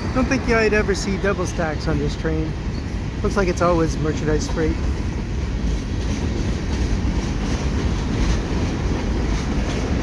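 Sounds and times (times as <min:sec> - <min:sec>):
steel wheels rumbling on rail: 0:00.0 - 0:10.0.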